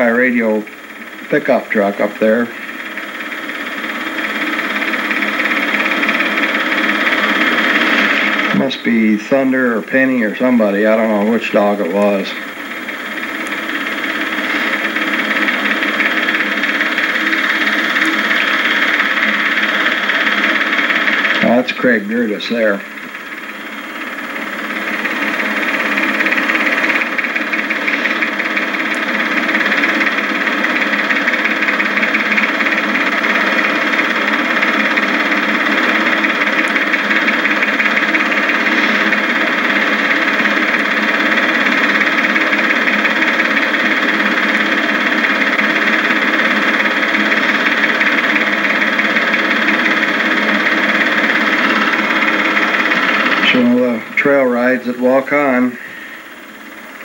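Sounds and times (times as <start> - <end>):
film projector whirring and clattering: 0.0 - 57.0.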